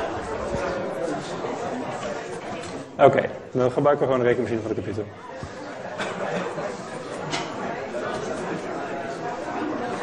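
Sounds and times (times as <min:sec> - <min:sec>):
murmur of students talking: 0:00.0 - 0:10.0.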